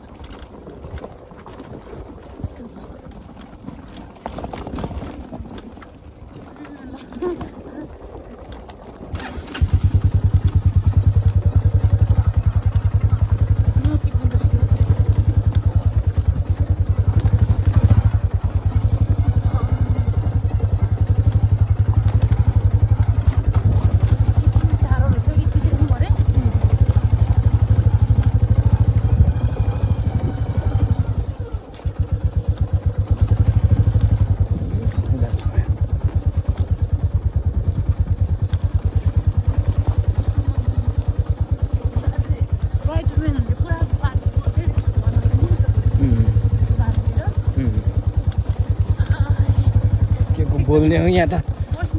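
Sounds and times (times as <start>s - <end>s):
motorcycle engine running under load: 0.0s - 51.9s.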